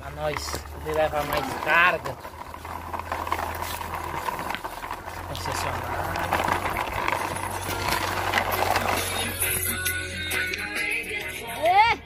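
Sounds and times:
wooden toy truck rattling on concrete: 0:00.0 - 0:11.4.

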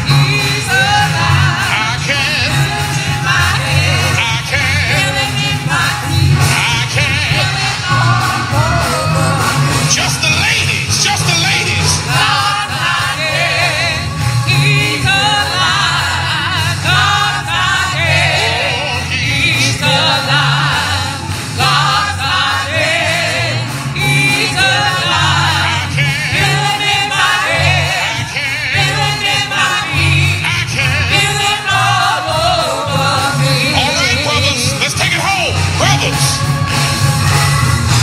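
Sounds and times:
gospel singing with vibrato: 0:00.0 - 0:38.0
pulsing bass accompaniment: 0:00.0 - 0:38.0.

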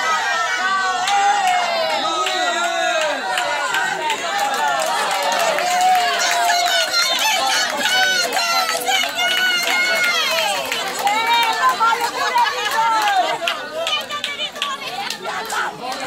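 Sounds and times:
people talking over one another: 0:00.0 - 0:16.0.

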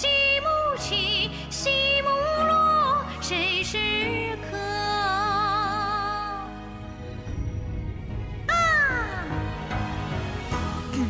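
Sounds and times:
backing music: 0:05.2 - 0:11.0.

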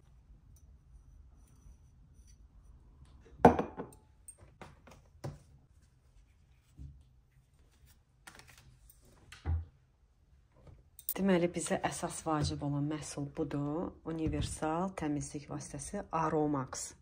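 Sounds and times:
can knocked on countertop: 0:03.4 - 0:04.0.

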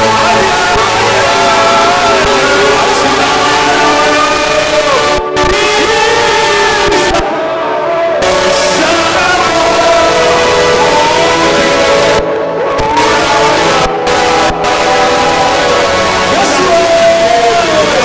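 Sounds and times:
live church band music: 0:00.0 - 0:18.0
voices singing: 0:00.0 - 0:18.0.

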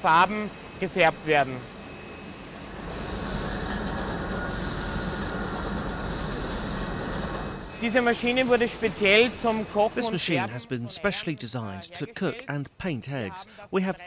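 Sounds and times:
machine running noise: 0:00.0 - 0:10.4
paint nozzles spraying hissing bursts: 0:02.9 - 0:03.7, 0:04.5 - 0:05.3, 0:06.0 - 0:06.9, 0:07.6 - 0:08.4.

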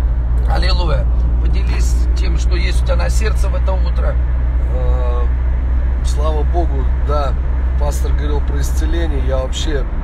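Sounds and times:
car cabin road and engine rumble: 0:00.0 - 0:10.0.

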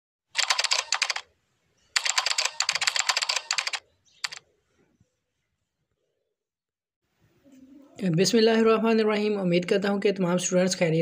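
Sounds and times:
keyboard typing clicks: 0:00.4 - 0:01.2, 0:02.0 - 0:04.4.

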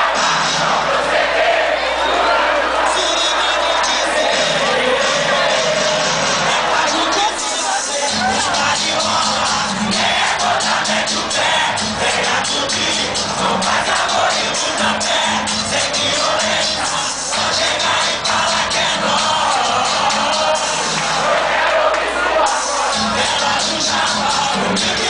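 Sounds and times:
funk music over sound system: 0:00.0 - 0:01.3, 0:02.7 - 0:21.7, 0:22.3 - 0:25.0
crowd noise: 0:00.0 - 0:25.0.

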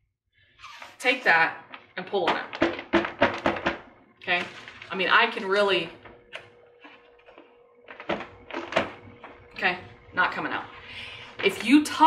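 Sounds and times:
faint steady hum: 0:00.8 - 0:12.0.

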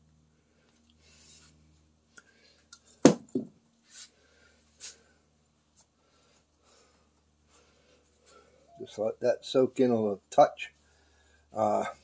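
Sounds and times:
sharp knocks on metal: 0:03.0 - 0:03.5.

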